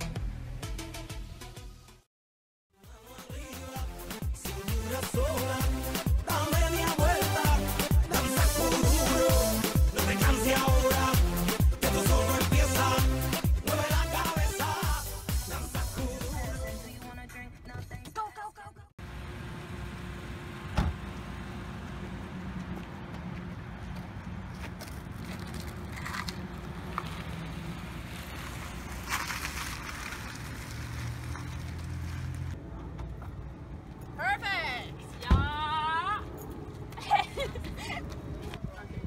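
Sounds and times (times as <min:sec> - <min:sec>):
car engine running at low speed: 0:19.0 - 0:34.2.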